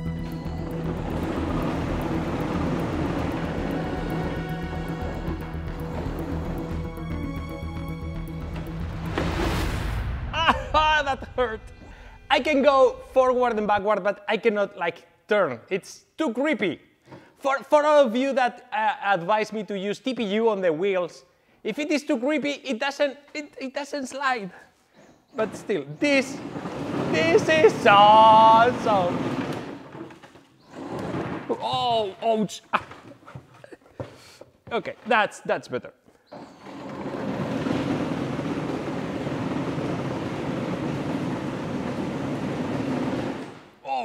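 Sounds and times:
tank motors rushing: 0:00.0 - 0:09.9, 0:26.1 - 0:31.5, 0:36.3 - 0:43.8
man speaking: 0:10.4 - 0:16.8, 0:17.4 - 0:24.7, 0:27.0 - 0:29.2, 0:31.5 - 0:32.9, 0:34.7 - 0:36.0.

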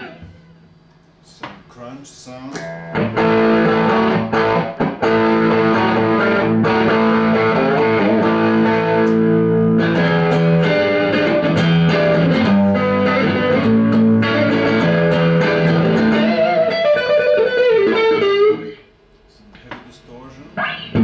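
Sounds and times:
electric guitar chords: 0:00.0 - 0:01.0, 0:02.5 - 0:18.9, 0:20.5 - 0:21.0.

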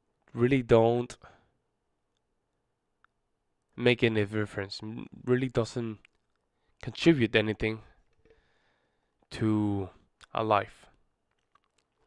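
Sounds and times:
man speaking into a microphone: 0:00.3 - 0:01.4, 0:03.8 - 0:06.1, 0:06.8 - 0:08.0, 0:09.3 - 0:10.9.

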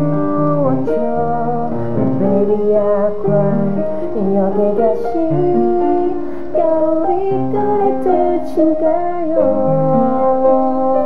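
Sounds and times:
piano accompaniment: 0:00.0 - 0:11.0
woman singing: 0:00.0 - 0:11.0.

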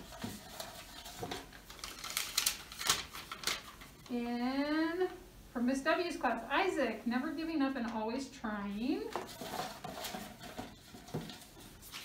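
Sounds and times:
paper crackling and rustling: 0:00.0 - 0:04.1, 0:08.9 - 0:12.0.

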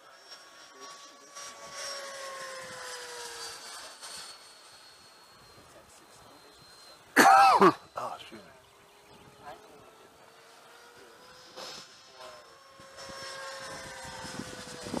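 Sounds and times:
model jet whining in flight: 0:00.0 - 0:15.0.

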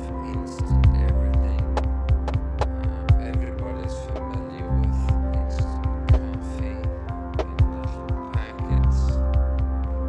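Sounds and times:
deep bass hum: 0:00.0 - 0:10.0
experimental electronic music: 0:00.0 - 0:10.0.

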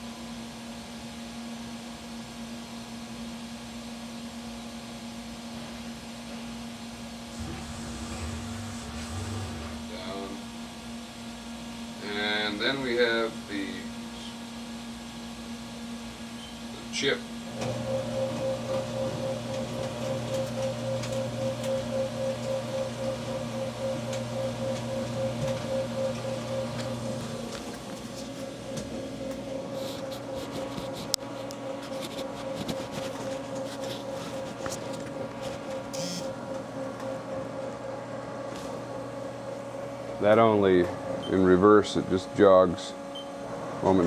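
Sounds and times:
gear motor pulsing hum: 0:07.2 - 0:10.9, 0:17.6 - 0:39.8.

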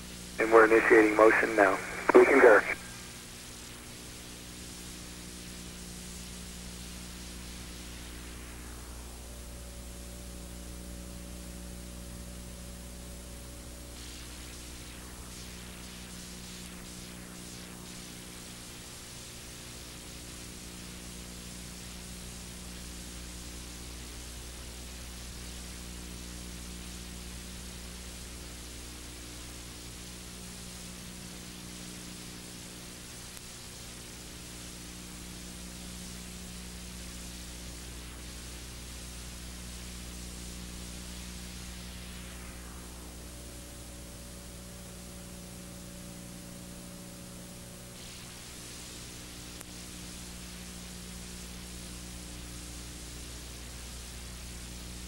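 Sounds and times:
steady hiss: 0:00.0 - 0:09.4, 0:13.9 - 0:28.8, 0:30.0 - 0:45.0, 0:47.9 - 0:55.0
low electrical hum: 0:00.0 - 0:55.0.

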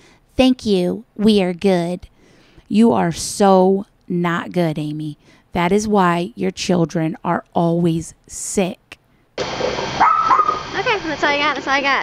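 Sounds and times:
outdoor background noise: 0:00.0 - 0:12.0
dog barking: 0:10.0 - 0:10.6.

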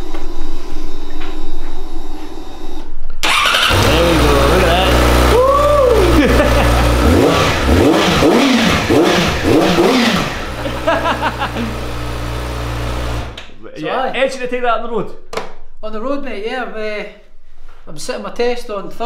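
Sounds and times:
motorcycle engine idling and revving: 0:03.2 - 0:13.4
motorcycle engine starting: 0:03.2 - 0:13.4.

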